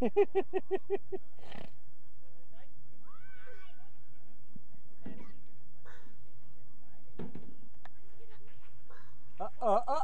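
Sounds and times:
outdoor background noise: 0.0s - 10.0s
child laughing: 9.4s - 10.0s.

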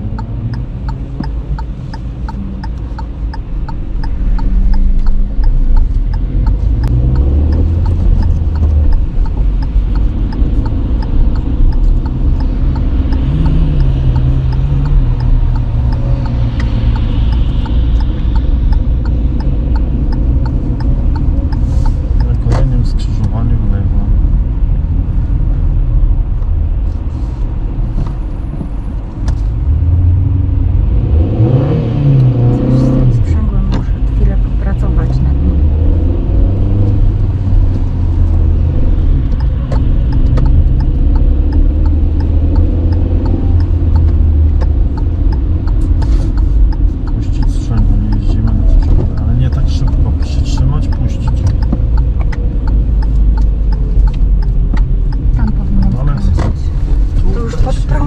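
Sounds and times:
car engine: 0.0s - 58.0s
road rumble inside car: 0.0s - 58.0s.

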